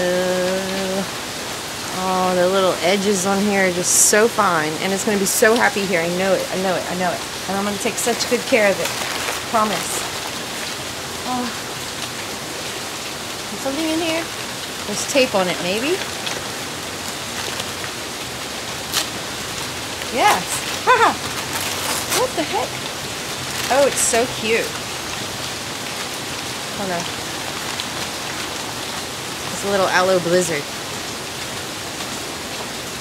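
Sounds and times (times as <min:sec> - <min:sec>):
steady rain falling: 0:00.0 - 0:33.0
packing paper crinkling: 0:08.0 - 0:10.9, 0:20.3 - 0:24.4.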